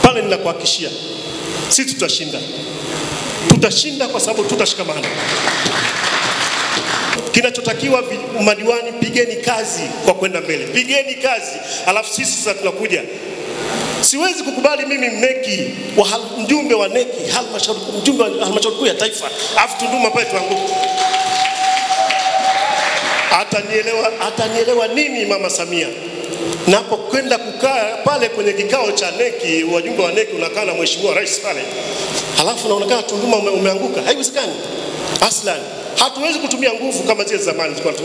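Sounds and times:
audience applauding: 5.0 - 7.3, 19.3 - 24.0.

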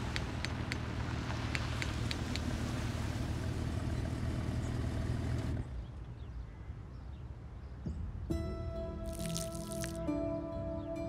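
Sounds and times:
car engine rumble: 0.0 - 6.3.

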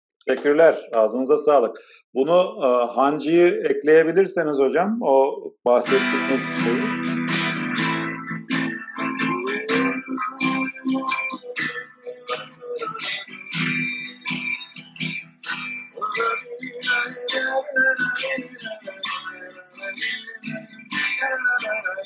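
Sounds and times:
acoustic guitar strumming and picking: 5.8 - 22.0.

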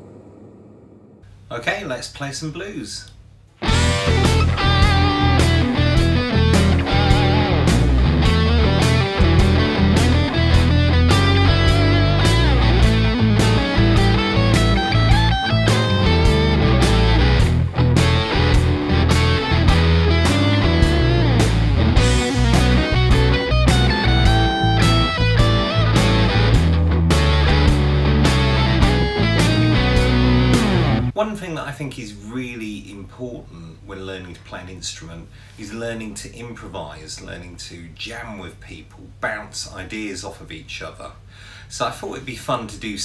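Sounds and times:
electric guitar blues solo: 3.6 - 31.1
blues backing track: 3.6 - 31.2.

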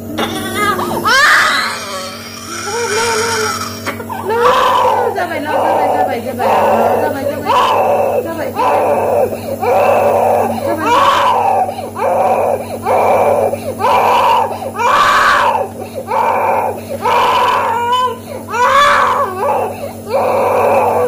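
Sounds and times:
steady low hum: 0.0 - 21.0
infant crying hard: 0.2 - 21.0.

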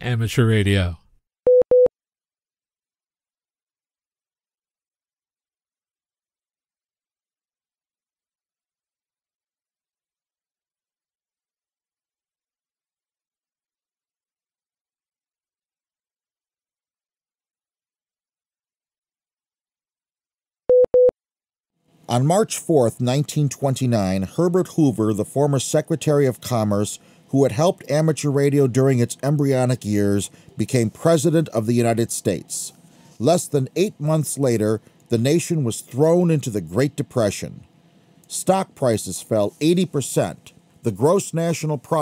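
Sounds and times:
short electronic beeps: 20.7 - 21.1.

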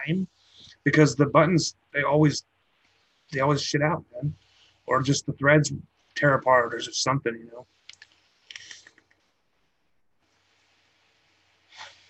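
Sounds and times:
airy hiss with light crackle: 0.0 - 12.0.

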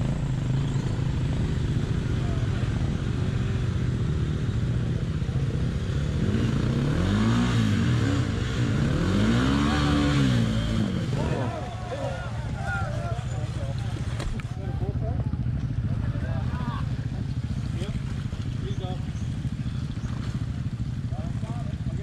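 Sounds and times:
dirt bike engines revving: 0.0 - 22.0
water splashing: 17.3 - 21.0.

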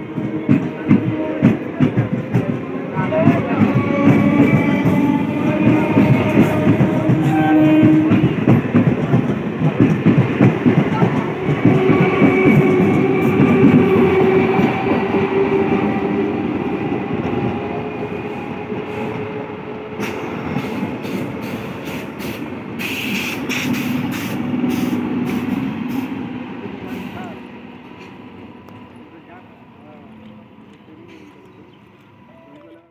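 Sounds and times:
electric train rumbling past: 0.0 - 32.9
train wheel clicks on rails: 0.2 - 14.8.

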